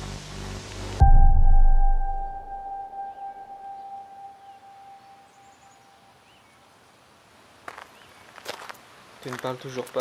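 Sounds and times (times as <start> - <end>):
deep boom: 1.0 - 3.4
high steady ringing tone: 1.0 - 6.1
faint bird chirps: 2.2 - 6.7.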